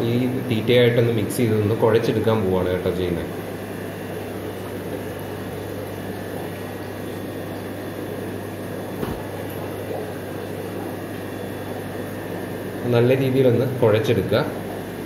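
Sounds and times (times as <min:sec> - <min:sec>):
aquarium air pump hum: 0:00.0 - 0:15.0
soft bump: 0:09.0 - 0:09.4.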